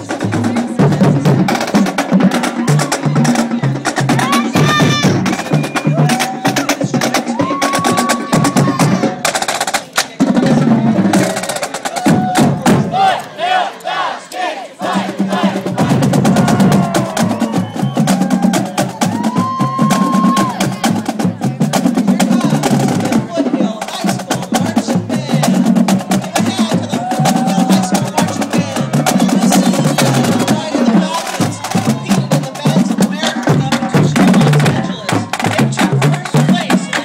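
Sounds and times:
snare and bass drums cadence: 0:14.8 - 0:37.0.

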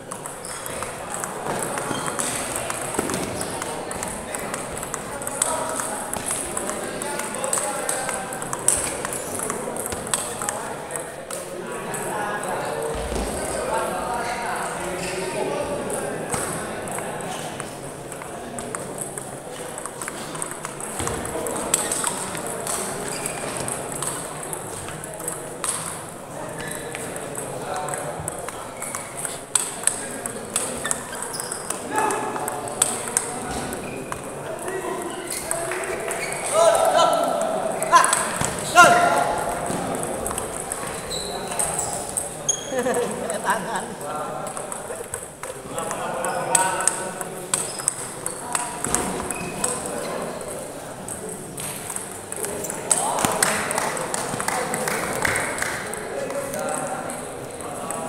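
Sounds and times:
people talking: 0:00.0 - 0:58.0
table tennis ball clicking: 0:00.1 - 0:11.4, 0:17.6 - 0:26.2, 0:26.9 - 0:34.3, 0:39.4 - 0:42.3, 0:44.4 - 0:50.0, 0:51.0 - 0:56.0.

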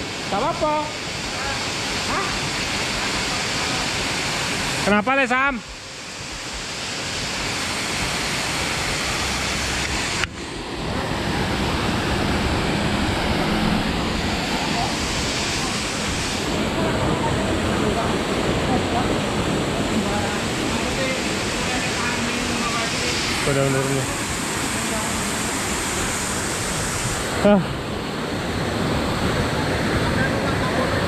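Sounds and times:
rushing water channel: 0:00.0 - 0:31.0.

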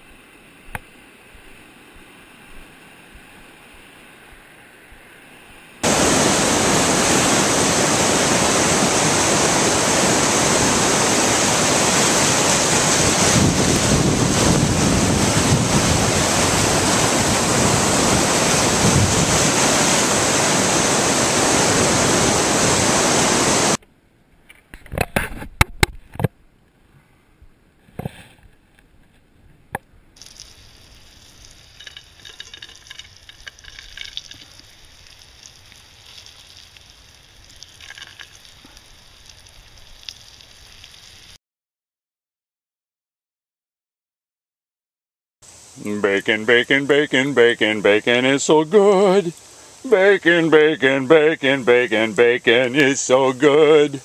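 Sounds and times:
river rapids rushing over rocks: 0:05.8 - 0:23.8
frying sizzle in a pan: 0:30.2 - 0:41.4.

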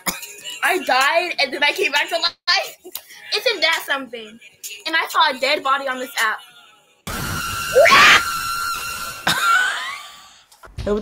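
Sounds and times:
loud harsh screech: 0:07.1 - 0:09.4
person screaming: 0:07.8 - 0:08.3.

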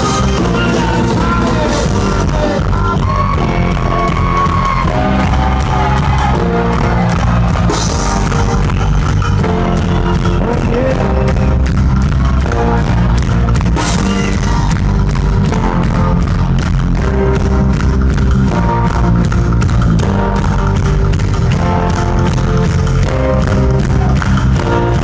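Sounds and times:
bass guitar: 0:00.0 - 0:25.0
drum beat: 0:00.0 - 0:25.0.

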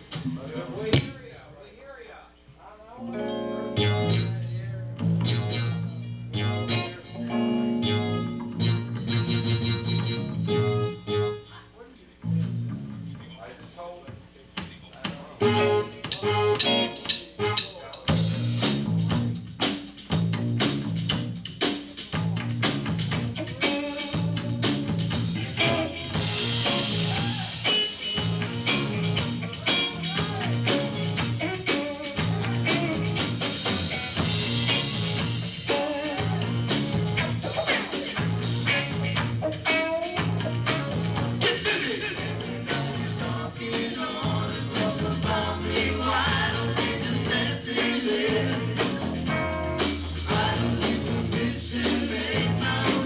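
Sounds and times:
drum kit: 0:00.0 - 0:01.4, 0:03.8 - 0:10.8, 0:12.2 - 0:53.0
bass and guitar notes: 0:03.0 - 0:11.5, 0:12.2 - 0:13.4, 0:15.3 - 0:53.0
live band playing: 0:03.0 - 0:11.5, 0:15.1 - 0:53.0.

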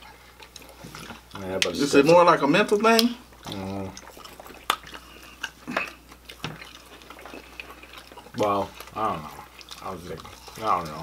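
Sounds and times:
people chewing chicken wings: 0:00.0 - 0:11.0
wet mouth clicks and smacks: 0:03.0 - 0:10.5.

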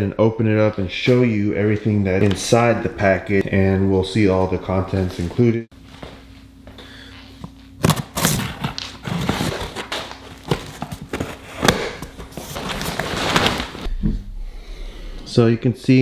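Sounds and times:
knife cutting cardboard box: 0:07.8 - 0:09.9
plastic wrapping rustling: 0:07.9 - 0:13.9.

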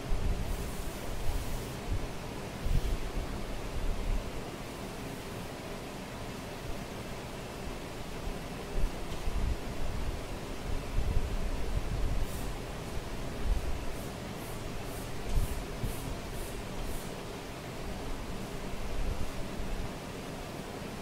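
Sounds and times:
room noise hiss: 0:00.0 - 0:21.0.

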